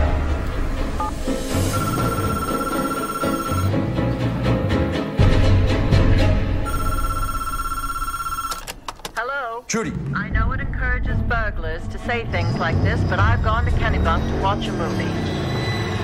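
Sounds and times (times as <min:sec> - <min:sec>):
low brooding music: 0:00.0 - 0:06.7
telephone ringing: 0:01.7 - 0:03.8, 0:06.6 - 0:08.9.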